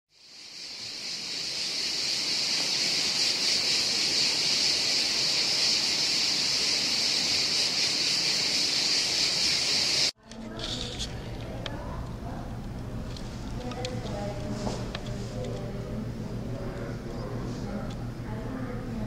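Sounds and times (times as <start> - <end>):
cicada buzzing: 0.1 - 10.2.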